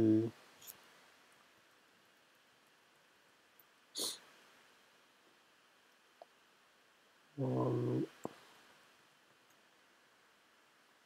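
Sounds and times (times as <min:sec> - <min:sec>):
short breathy noise: 0:04.0 - 0:04.3.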